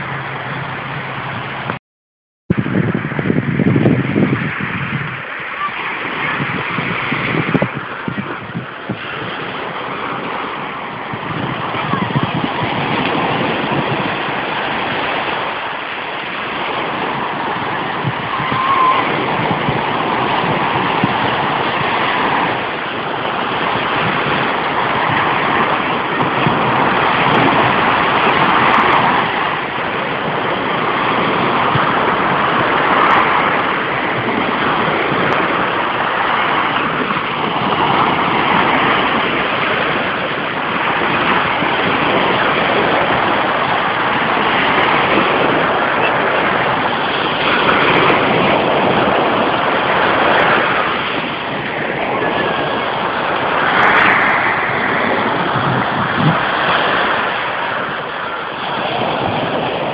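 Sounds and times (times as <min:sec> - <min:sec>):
surf washing up beach: 0:00.0 - 0:01.8, 0:02.5 - 0:59.9.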